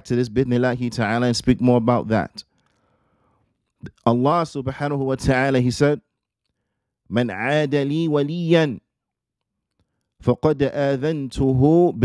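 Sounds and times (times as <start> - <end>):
man speaking: 0.0 - 2.4, 3.8 - 6.0, 7.1 - 8.8, 10.2 - 12.0.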